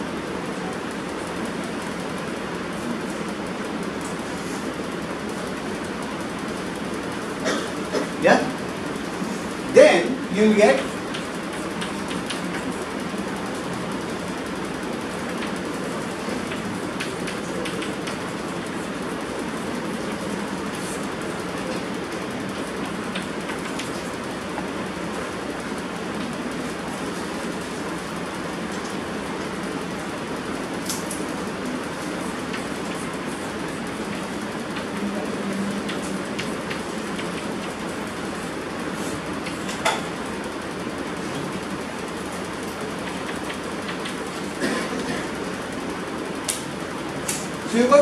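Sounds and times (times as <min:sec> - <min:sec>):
steady rushing room noise: 0:00.0 - 0:48.0.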